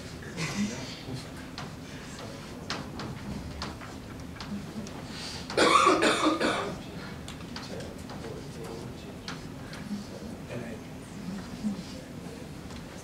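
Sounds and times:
person coughing: 0.2s - 1.1s, 5.6s - 6.8s.

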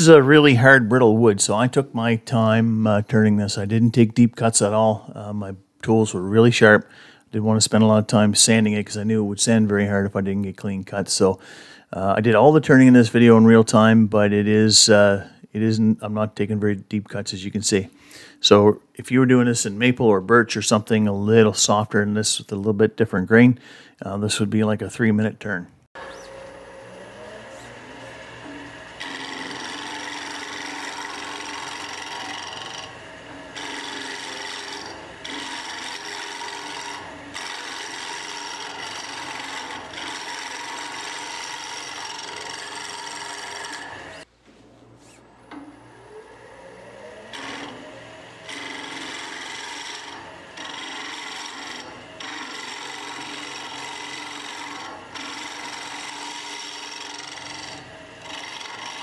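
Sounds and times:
lathe whine: 26.0s - 44.3s, 45.3s - 59.0s
turning tool scraping wood: 26.0s - 44.3s, 47.2s - 59.0s.

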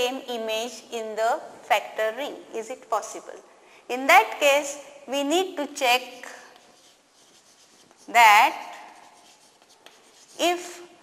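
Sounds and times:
chalk scratching on blackboard: 6.5s - 10.9s.

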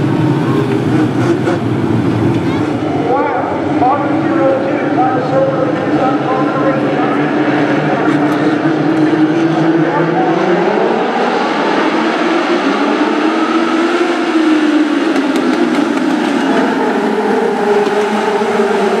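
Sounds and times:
race car engines droning: 0.0s - 19.0s.

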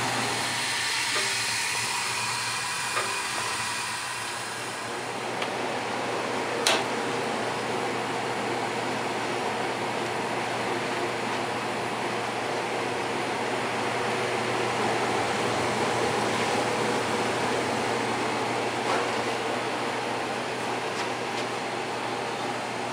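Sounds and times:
gas furnace and blower fan humming: 0.0s - 22.9s.

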